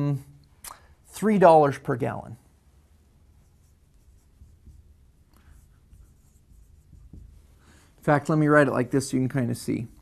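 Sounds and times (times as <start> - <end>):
marker writing on whiteboard: 3.4 - 8.1.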